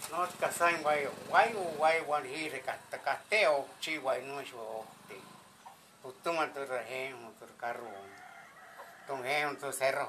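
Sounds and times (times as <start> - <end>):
rooster crowing: 8.0 - 9.6.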